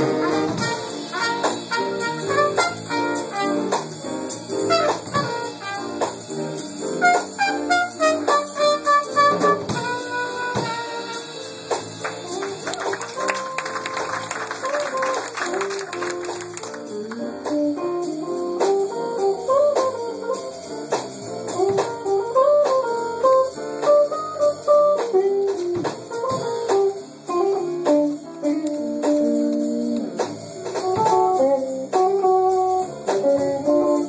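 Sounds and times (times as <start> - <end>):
loud cymbals: 0.0 - 12.8, 20.2 - 21.7
jazz band playing: 0.0 - 34.0
steady drum beat: 0.0 - 34.0.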